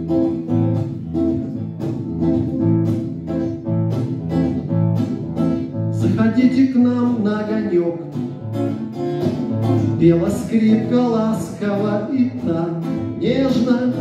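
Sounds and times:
acoustic guitar strumming: 0.0 - 14.0
sliding guitar tune: 0.0 - 14.0.

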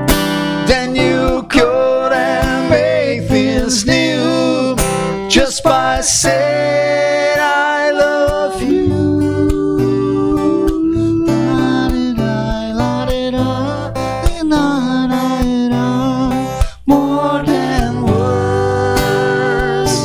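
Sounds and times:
acoustic guitar strumming: 0.0 - 20.0
person singing slow melody: 0.7 - 20.0.

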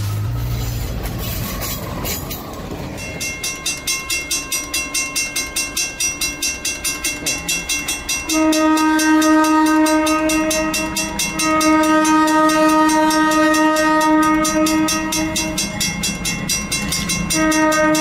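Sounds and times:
crossing warning bell ringing: 0.0 - 18.0
locomotive air horn blasts: 8.3 - 15.8, 17.3 - 18.0.

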